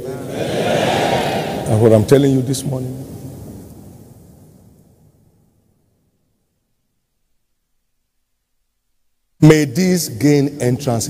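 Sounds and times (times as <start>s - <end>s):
voice reverberation: 0.0s - 4.1s
auditorium room rumble: 0.0s - 4.4s.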